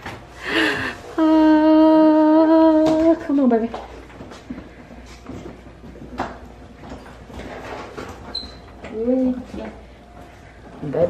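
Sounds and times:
woman humming a long note: 1.2s - 2.8s.

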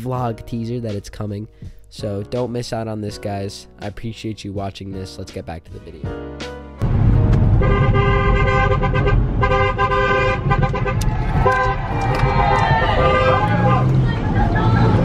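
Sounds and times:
car horn blasts: 7.5s - 14.0s
voices: 12.6s - 15.0s.

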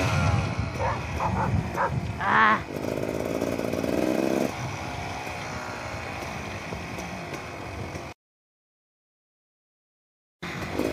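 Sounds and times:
dirt bike engine running: 0.0s - 8.2s, 10.4s - 10.9s
dog barking: 0.8s - 2.0s.

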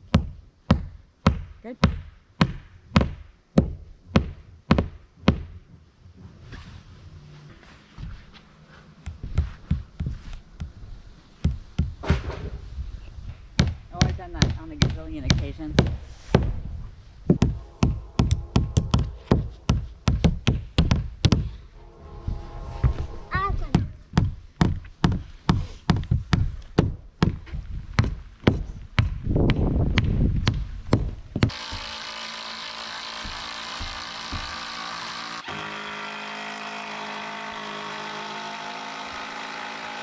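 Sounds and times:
hammer driving nails: 23.8s - 40.0s.

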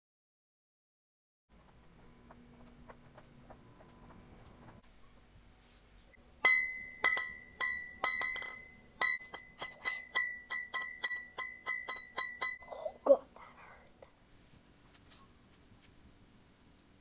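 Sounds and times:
glass bottles clinking: 6.4s - 12.8s.

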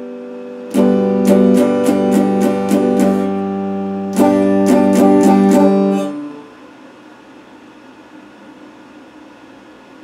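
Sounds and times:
faint guitar note ringing: 0.0s - 6.7s
guitar amplifier hiss and hum: 0.0s - 10.0s.

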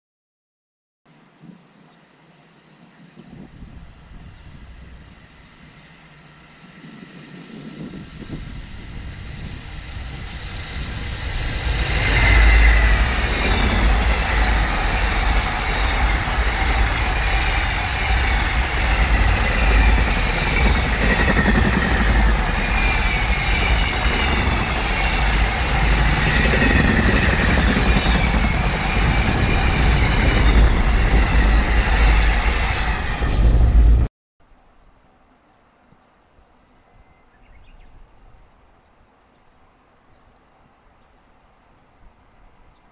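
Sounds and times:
freight train passing: 3.4s - 34.1s.

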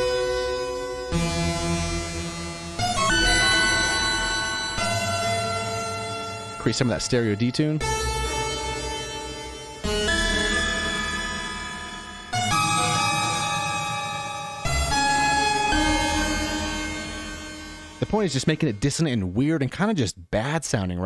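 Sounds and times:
dissonant detuned synth chords: 0.0s - 18.9s.

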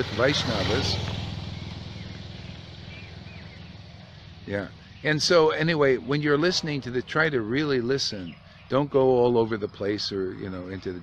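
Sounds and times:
motorcycle engine running: 0.0s - 9.0s
faint bird chirps: 1.5s - 6.2s, 6.8s - 11.0s.

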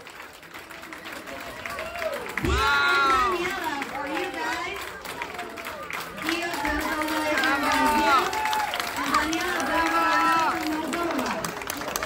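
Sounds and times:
people talking: 6.2s - 8.3s, 9.0s - 12.0s.

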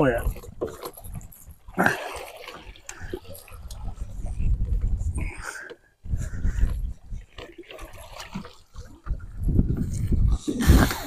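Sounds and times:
wind rumbling on microphone: 0.0s - 2.0s, 2.6s - 11.0s
net hauled into boat: 0.0s - 11.0s
water splashing: 0.0s - 11.0s.

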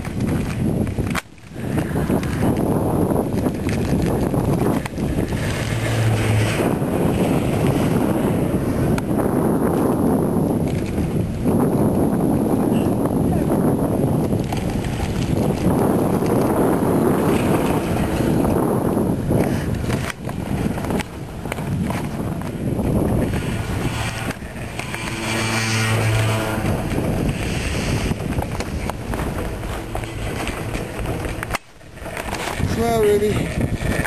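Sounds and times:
chairlift rumble: 0.0s - 34.0s
wind buffeting microphone: 0.0s - 34.0s
steady hum: 22.2s - 32.1s.

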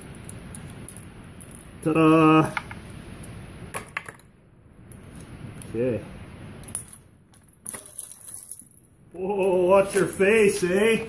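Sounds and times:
bicycle chain clinking: 6.6s - 10.9s.

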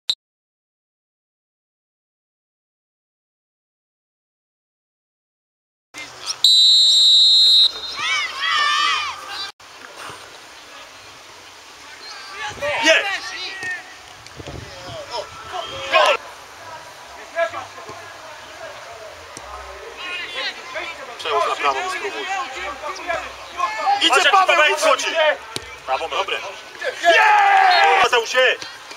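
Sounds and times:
open-air field noise: 6.0s - 28.9s
referee's whistle blast: 6.4s - 8.2s
players calling out: 11.7s - 28.9s.

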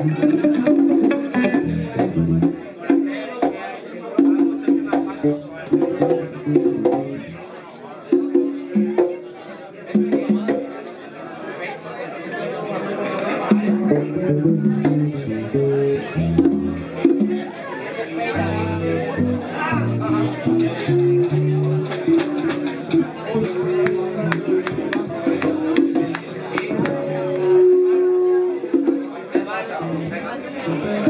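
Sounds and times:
keyboard notes: 0.0s - 2.5s, 13.6s - 17.0s, 18.2s - 28.9s
guitar: 0.0s - 7.5s, 13.0s - 31.0s
people talking: 0.0s - 31.0s
hand drum taps: 4.2s - 7.2s, 20.0s - 27.7s.

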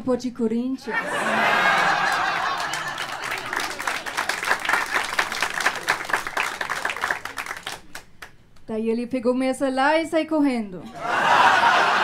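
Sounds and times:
audience laughing: 0.8s - 6.1s, 10.9s - 12.0s
audience clapping: 1.2s - 8.4s.

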